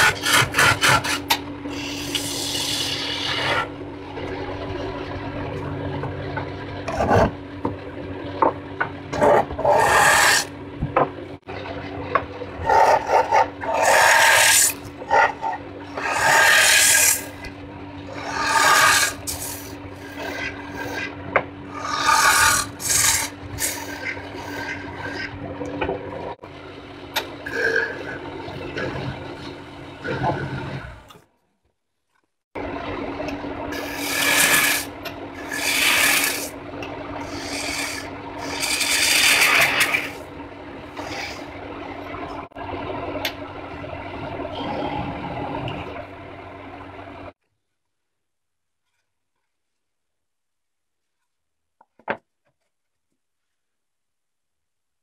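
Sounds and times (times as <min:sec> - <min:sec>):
turning tool scraping wood: 0:00.0 - 0:03.7, 0:09.1 - 0:10.5, 0:12.6 - 0:17.3, 0:18.2 - 0:21.1, 0:21.8 - 0:25.4, 0:33.8 - 0:36.5, 0:37.3 - 0:40.2
wood lathe humming: 0:00.0 - 0:04.9, 0:12.6 - 0:21.1, 0:21.7 - 0:25.4, 0:33.3 - 0:36.6, 0:37.2 - 0:44.9.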